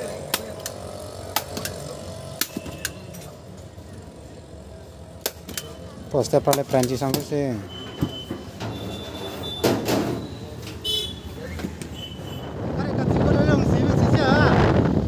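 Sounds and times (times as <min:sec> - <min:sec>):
voices: 0:00.0 - 0:14.8
wind noise on microphone: 0:12.2 - 0:15.0.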